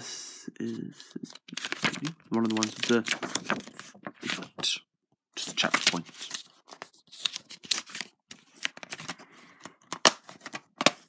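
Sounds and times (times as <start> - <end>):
plastic case clicking and scraping: 7.7 - 11.0.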